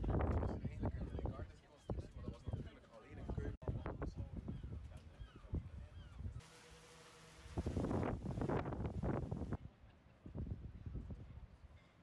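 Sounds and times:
wind buffeting microphone: 0.0s - 6.4s, 7.6s - 9.6s.

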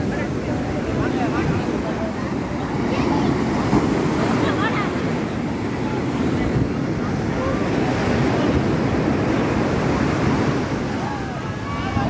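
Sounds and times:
faint voices: 0.0s - 12.0s
ocean surf breaking on beach: 0.0s - 12.0s
wind buffeting microphone: 0.0s - 12.0s.

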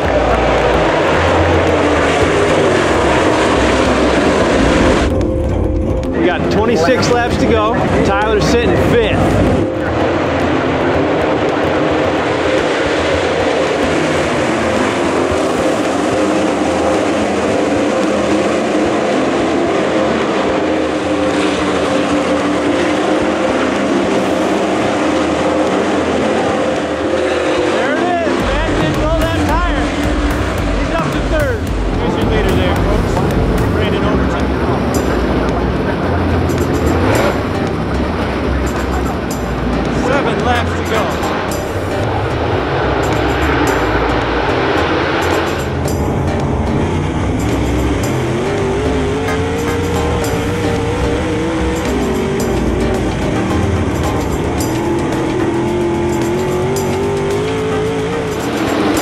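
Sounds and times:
background music: 0.0s - 59.0s
race car engines at speed: 0.0s - 59.0s.

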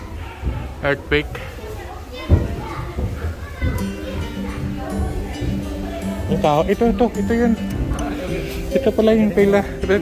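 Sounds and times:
schoolchildren chattering: 0.0s - 10.0s.

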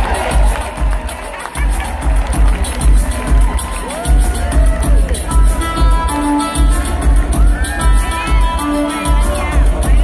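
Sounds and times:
booming bass beat: 0.0s - 10.0s
live rock band playing: 0.0s - 10.0s.

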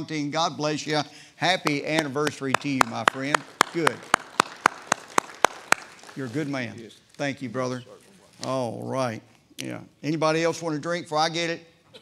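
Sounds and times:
rhythmic hand clapping: 1.5s - 8.0s
faint applause: 2.5s - 6.9s.

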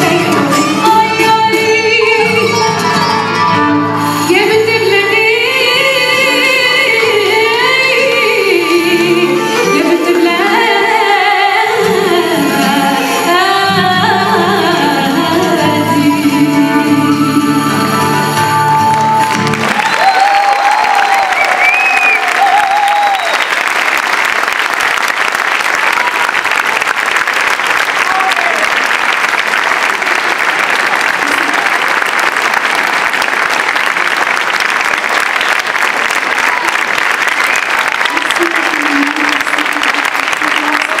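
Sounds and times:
audience applause: 18.4s - 41.0s
people cheering: 18.8s - 41.0s.

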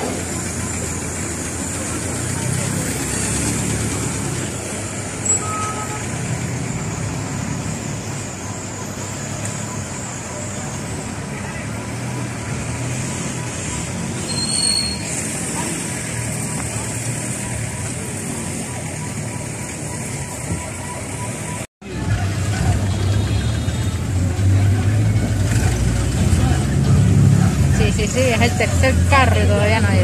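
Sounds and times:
vehicle engines running: 0.0s - 30.0s.

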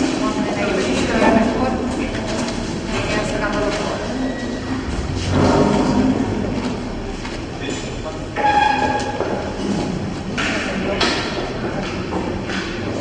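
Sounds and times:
indistinct voices: 0.0s - 13.0s.

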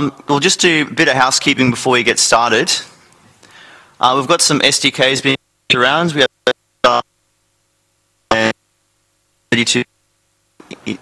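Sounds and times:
man speaking a syllable: 4.0s - 7.1s, 8.3s - 8.6s, 9.5s - 9.9s, 10.7s - 11.0s.

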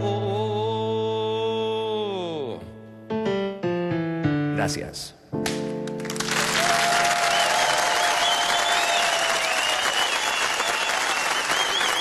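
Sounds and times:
audience applauding and cheering: 5.9s - 12.0s
whistles from audience: 6.9s - 12.0s.

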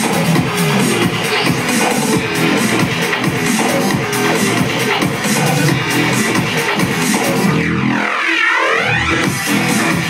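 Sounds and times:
electronic breakbeat music: 0.0s - 10.0s.

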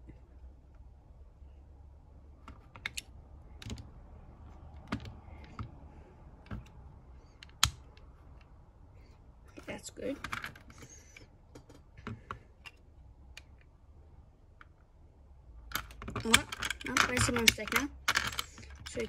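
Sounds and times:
plastic bricks clicking: 15.7s - 19.0s.

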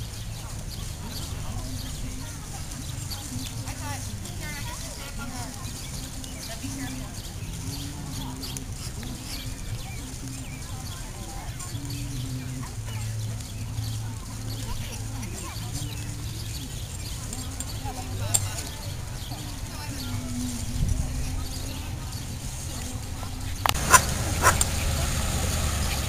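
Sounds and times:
people talking indistinctly: 0.0s - 26.0s
steady background noise: 0.0s - 26.0s.

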